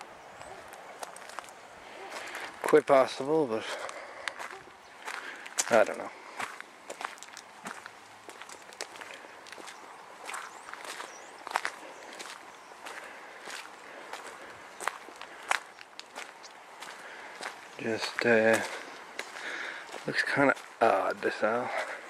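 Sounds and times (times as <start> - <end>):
footsteps on gravel: 0.0 - 22.0.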